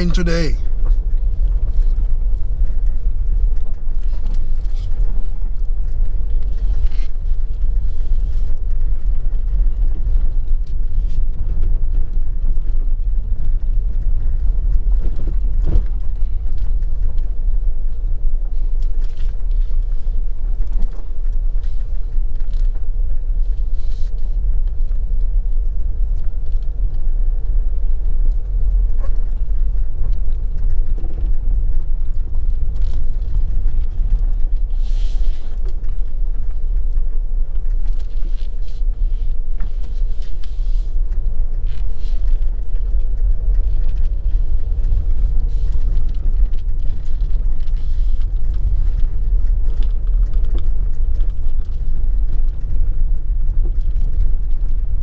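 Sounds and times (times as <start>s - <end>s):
vehicle rumbling on rough road: 0.0s - 55.0s.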